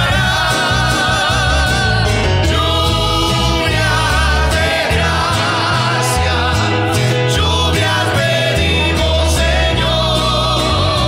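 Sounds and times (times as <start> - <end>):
steady bass line: 0.0 - 11.0
voice singing with vibrato: 0.0 - 11.0.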